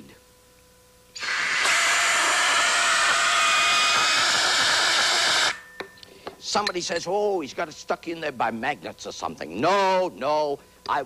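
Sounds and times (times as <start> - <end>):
compressed air hissing: 1.2 - 5.6.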